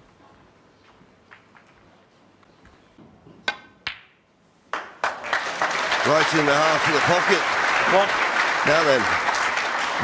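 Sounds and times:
audience applause: 4.7s - 10.0s.

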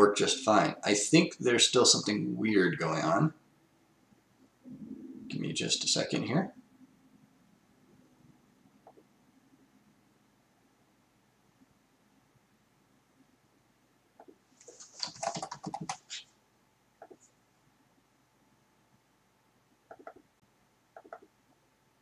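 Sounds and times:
typing on keyboard: 14.9s - 16.0s, 19.9s - 20.2s, 21.0s - 21.3s.

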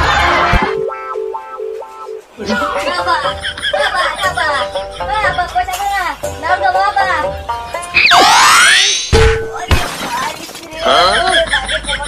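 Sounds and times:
glass shattering crash effect: 8.1s - 10.8s.

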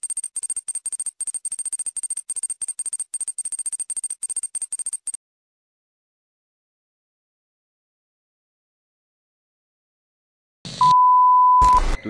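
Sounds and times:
steady electronic beep: 0.0s - 5.2s.

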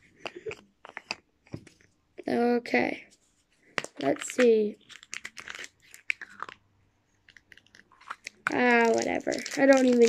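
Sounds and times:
chocolate cracking: 0.2s - 1.5s, 3.8s - 10.0s
foil crinkling: 7.5s - 10.0s.

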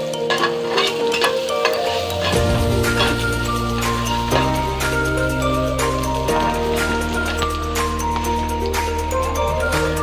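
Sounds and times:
background music: 0.0s - 10.0s
food frying in bubbling oil: 0.0s - 10.0s
utensil scraping pan: 0.2s - 5.3s.

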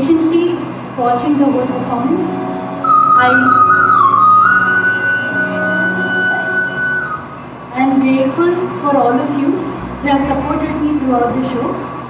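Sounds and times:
low drone: 1.5s - 12.0s
sliding melody: 2.5s - 8.7s, 9.4s - 12.0s.

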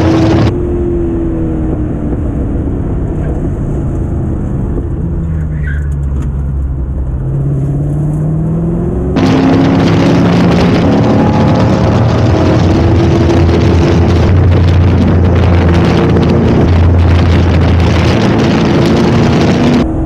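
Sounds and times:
race car engine running: 0.0s - 0.5s, 8.9s - 20.0s
wind noise on microphone: 0.0s - 7.1s, 9.2s - 20.0s.

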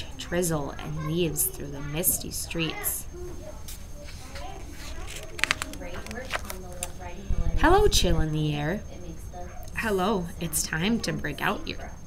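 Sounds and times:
soft indistinct speech: 0.0s - 7.7s
book page turning: 3.7s - 7.0s.

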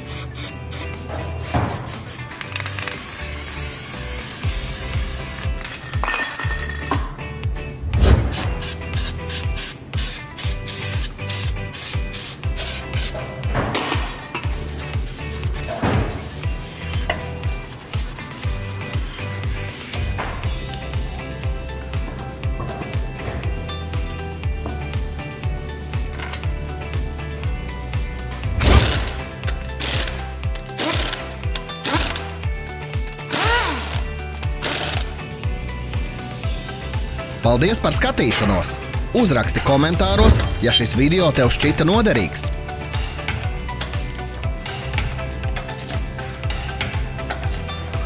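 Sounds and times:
aerosol spray hissing: 0.0s - 5.5s, 8.3s - 13.2s
background music with steady beat: 0.0s - 48.0s
air impact wrench bursts: 29.8s - 30.2s, 30.8s - 32.3s, 33.3s - 35.2s.

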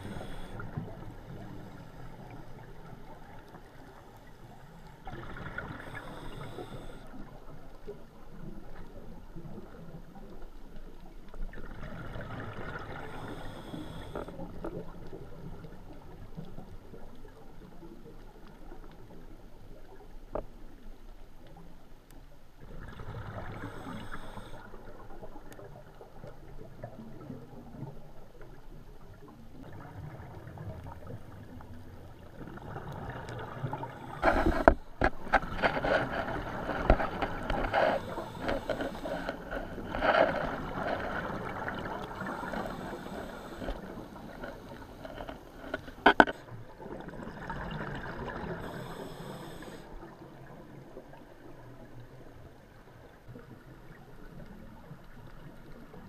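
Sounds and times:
gurgling underwater bubbles: 0.0s - 20.8s, 22.6s - 56.0s.

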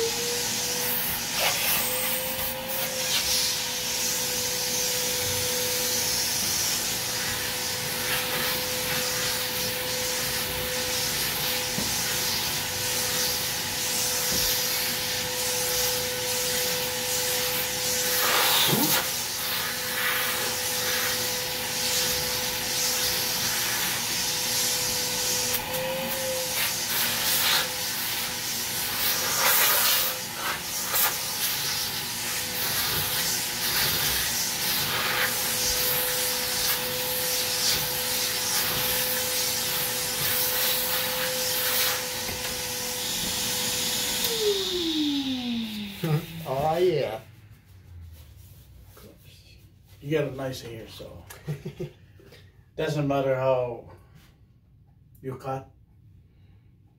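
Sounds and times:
vacuum whining: 0.0s - 48.2s.

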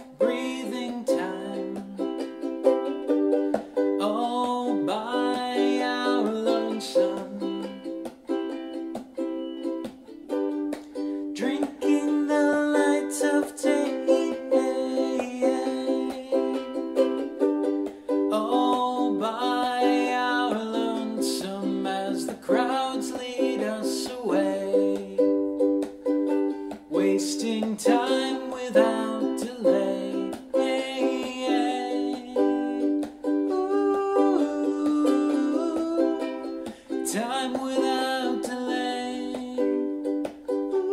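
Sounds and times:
ukulele strumming: 0.0s - 40.9s.

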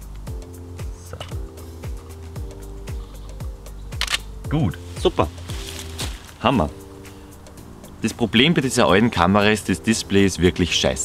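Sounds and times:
music with pulsing bass: 0.0s - 10.9s
camera shutter release: 4.0s - 4.3s.

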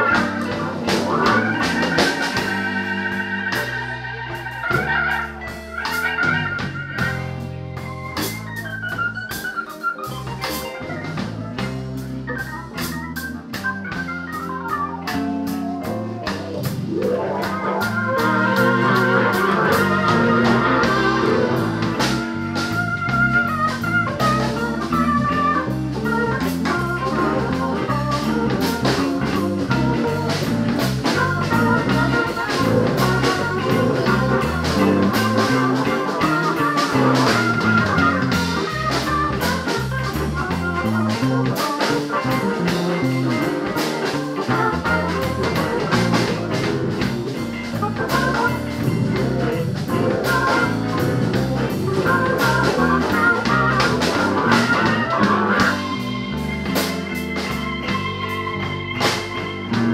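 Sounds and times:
drums: 0.0s - 59.9s
organ solo: 0.0s - 59.9s
walking bass line: 0.0s - 59.9s.

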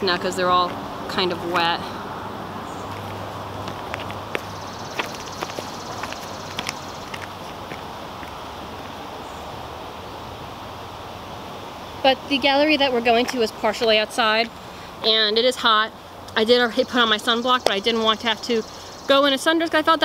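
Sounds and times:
outdoor background hiss: 0.0s - 20.0s
footsteps on grass and gravel: 2.8s - 9.1s.

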